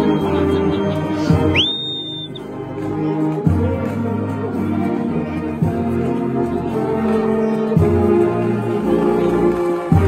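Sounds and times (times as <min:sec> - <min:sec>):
high swooping whistle: 0:00.0 - 0:02.4
brass band playing hymn chords: 0:00.0 - 0:10.0.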